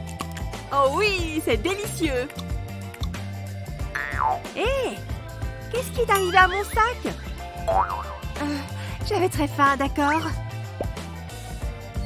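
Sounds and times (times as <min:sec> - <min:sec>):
light background music: 0:00.0 - 0:12.0
cartoon wobbly boing: 0:07.7 - 0:08.2.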